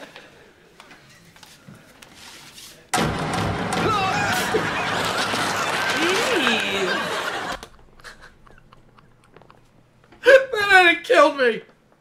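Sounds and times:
hearty laughter: 4.0 - 9.7.

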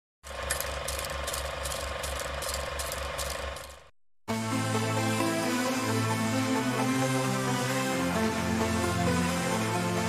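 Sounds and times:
film projector whirring and clicking: 0.3 - 3.9.

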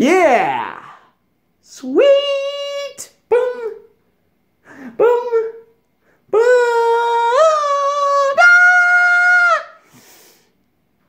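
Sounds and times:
faint breath: 9.8 - 10.6.

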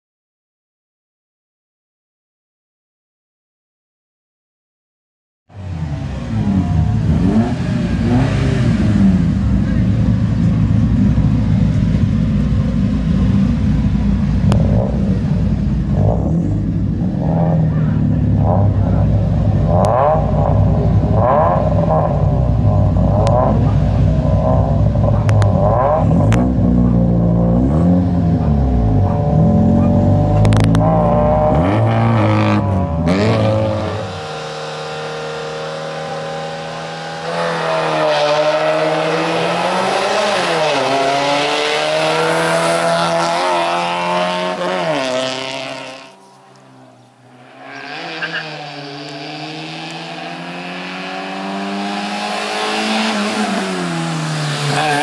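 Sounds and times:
car accelerating hard: 5.5 - 55.0
car engine revving: 5.5 - 55.0.

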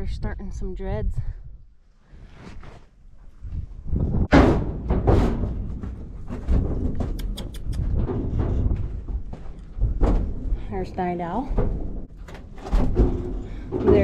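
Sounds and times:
hooves thudding on trailer floor: 4.3 - 14.0
sharp clicks: 7.1 - 7.9.

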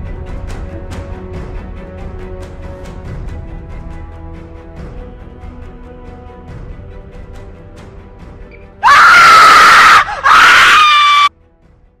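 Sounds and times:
loud high-pitched scream: 8.8 - 11.3.

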